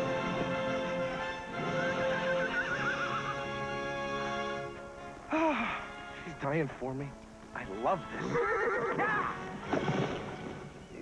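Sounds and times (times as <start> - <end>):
film score held chords: 0.0 - 11.0
horse whinnying: 0.1 - 3.8, 8.1 - 10.2.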